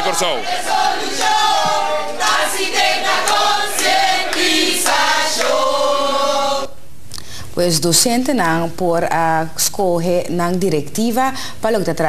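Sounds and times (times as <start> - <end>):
group singing in chorus: 0.0 - 6.8.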